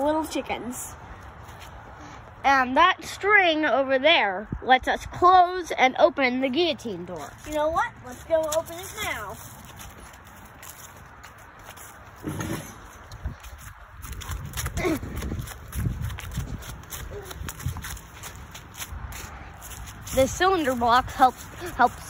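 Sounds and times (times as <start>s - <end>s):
footsteps on grass and leaves: 1.2s - 2.0s, 7.2s - 22.0s.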